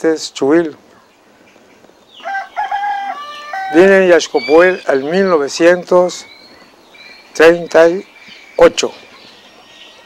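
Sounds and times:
rooster crowing: 0:02.2 - 0:04.2.

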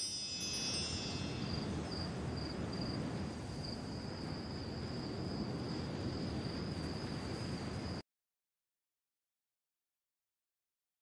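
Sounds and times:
chimes tinkling: 0:00.0 - 0:03.0
crickets chirping: 0:00.0 - 0:08.0.

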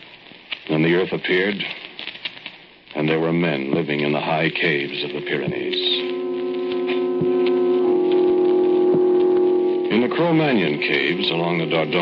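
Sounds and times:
record surface noise clicks: 0:00.0 - 0:09.6
organ music: 0:03.2 - 0:12.0.

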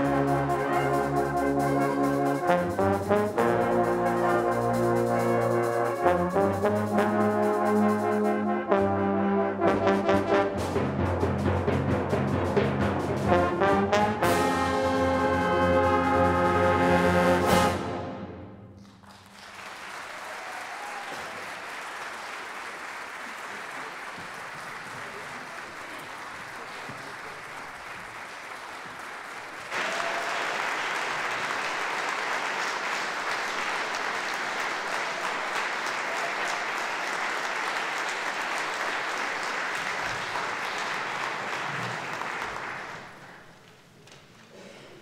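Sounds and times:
audience applauding: 0:18.8 - 0:43.9.

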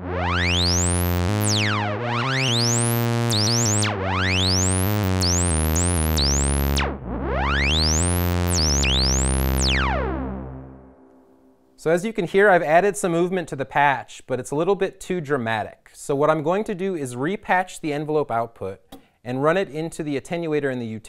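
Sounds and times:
synthesizer sweeping metallic notes: 0:00.0 - 0:11.6.

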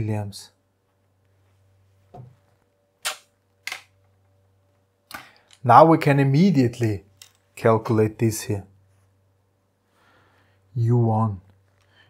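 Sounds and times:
faint low steady hum: 0:00.0 - 0:12.0.

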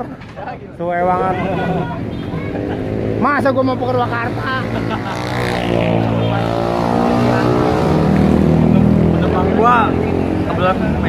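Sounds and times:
vehicle engine passing by: 0:01.2 - 0:11.0.

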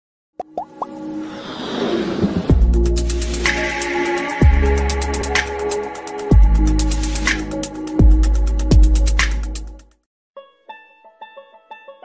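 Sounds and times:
electronic riser: 0:01.0 - 0:04.1.

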